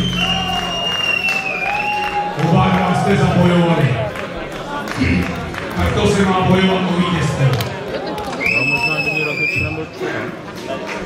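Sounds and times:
high whistling tone: 0:00.0 - 0:02.3
men talking: 0:02.4 - 0:11.0.

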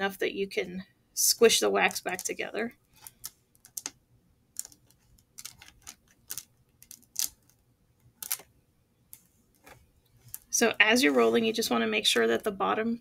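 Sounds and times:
beeswax sheet clicking and crackling: 0:01.8 - 0:08.5, 0:09.1 - 0:10.6.

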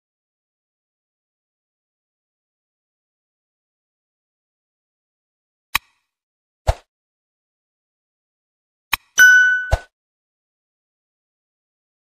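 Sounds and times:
notification bell ding: 0:09.2 - 0:09.9.

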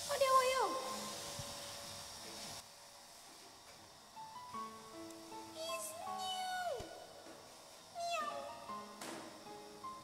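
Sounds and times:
quiet background music: 0:03.8 - 0:10.0.

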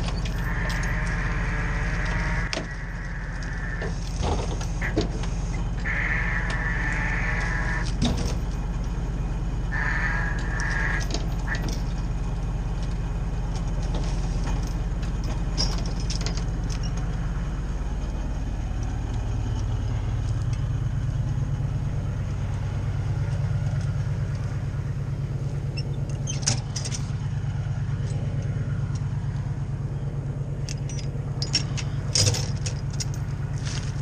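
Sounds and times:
truck engine humming: 0:00.0 - 0:34.0.

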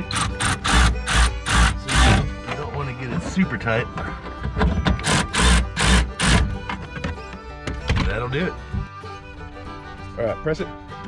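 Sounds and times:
ratchet wrench ratcheting: 0:00.0 - 0:02.2, 0:05.0 - 0:06.5.

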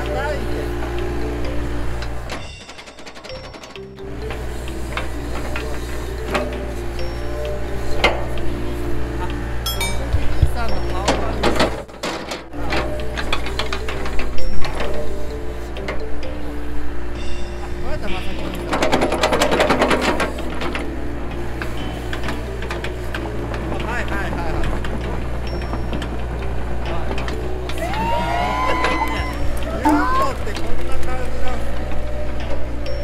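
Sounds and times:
excavator diesel engine running: 0:00.0 - 0:33.0.

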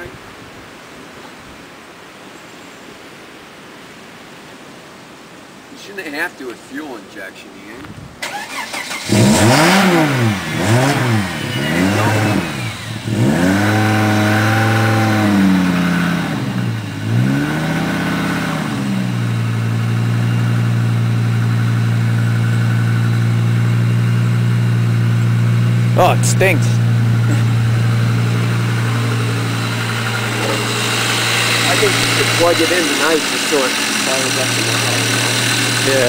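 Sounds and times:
car engine starting and idling: 0:08.2 - 0:36.0.

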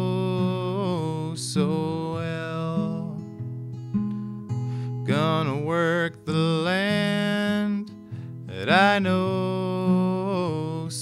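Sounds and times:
man singing: 0:00.0 - 0:03.3, 0:05.0 - 0:11.0
acoustic guitar strumming chords: 0:00.0 - 0:11.0.

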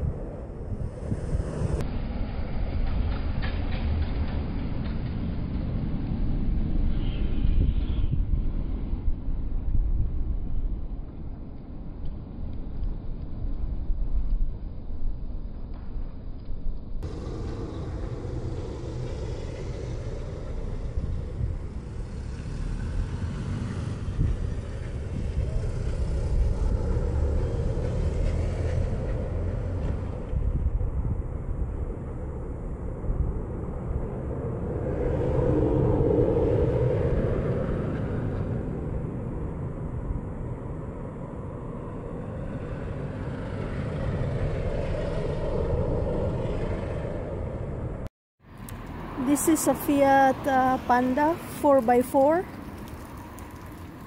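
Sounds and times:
road traffic rumble: 0:00.0 - 0:14.8, 0:16.9 - 0:54.0
vehicle passing: 0:17.0 - 0:54.0.

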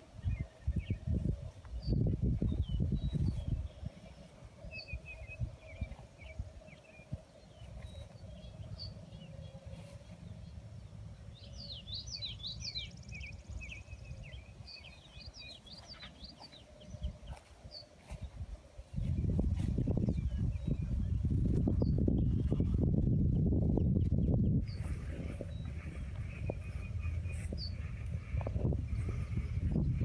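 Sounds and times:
songbirds chirping: 0:00.0 - 0:30.0
wind rumble on microphone: 0:00.0 - 0:30.0.

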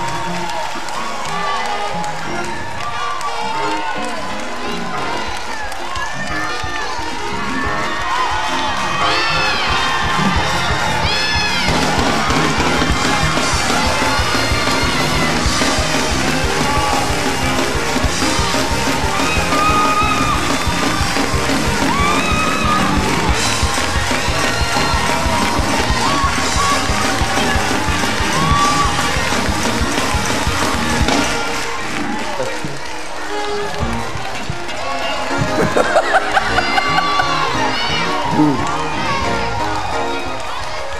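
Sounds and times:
congregation shouting and cheering: 0:00.0 - 0:40.9
loud praise music: 0:00.0 - 0:40.9.

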